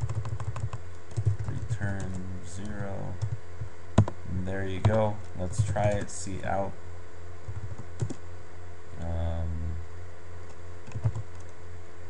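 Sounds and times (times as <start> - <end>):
computer keyboard keystrokes: 0.0 - 3.4, 4.0 - 4.2, 4.8 - 5.0, 7.5 - 8.2, 10.5 - 11.6
steady low hum: 0.0 - 12.0.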